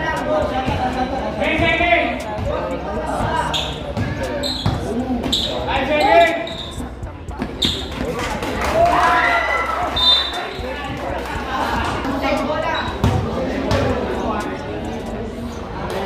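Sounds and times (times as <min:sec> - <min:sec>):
basketball bouncing on concrete: 0:03.9 - 0:04.9, 0:13.0 - 0:14.0.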